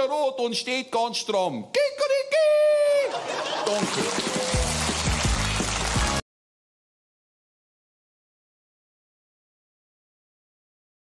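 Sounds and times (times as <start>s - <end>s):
studio audience applauding: 3.1s - 6.2s.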